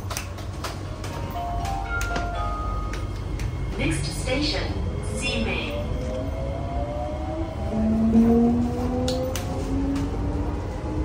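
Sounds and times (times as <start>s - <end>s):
low rumble of train car: 0.0s - 11.0s.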